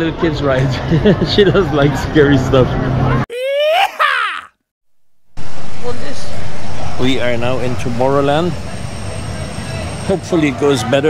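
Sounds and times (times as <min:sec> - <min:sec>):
loud steady rumbling: 0:05.4 - 0:10.7.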